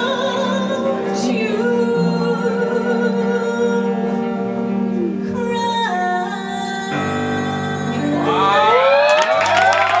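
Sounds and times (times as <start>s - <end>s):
audience cheering and whooping: 8.2s - 10.0s
hand clapping: 9.1s - 10.0s.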